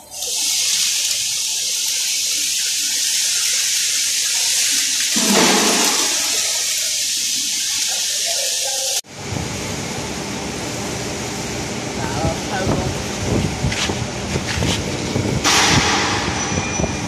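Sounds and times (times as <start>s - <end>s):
electric arc welding hiss: 0.0s - 9.0s.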